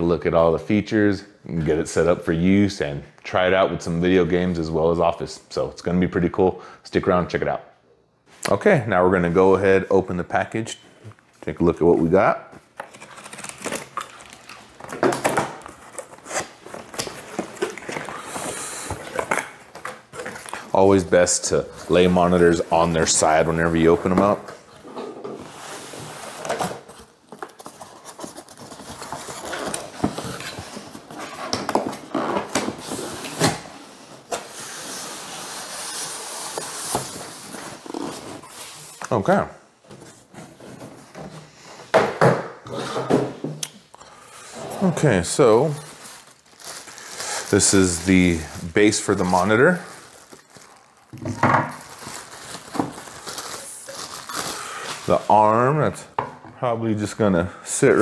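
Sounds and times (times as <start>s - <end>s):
packaging crinkling and rustling: 12.7s - 33.7s, 44.9s - 55.7s.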